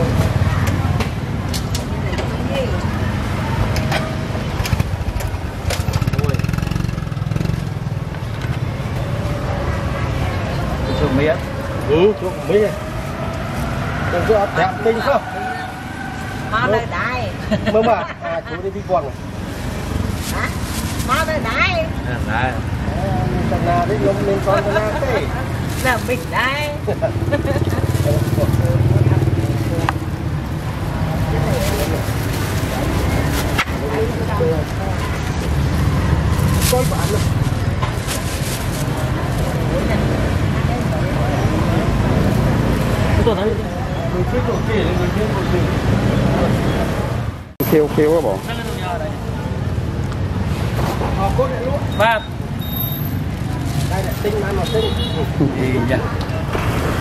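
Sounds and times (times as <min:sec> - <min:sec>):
low rumble of traffic: 0:00.0 - 0:57.0
people talking and calling: 0:00.0 - 0:57.0.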